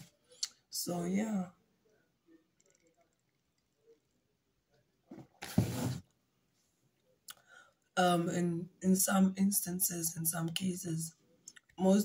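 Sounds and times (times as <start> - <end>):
faint breath: 7.4 - 7.8.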